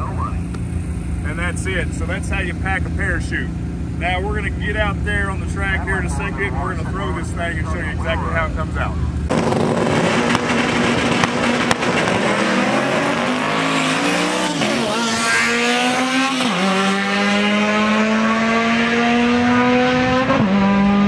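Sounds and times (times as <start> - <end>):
car engine accelerating hard: 1.3 - 21.0.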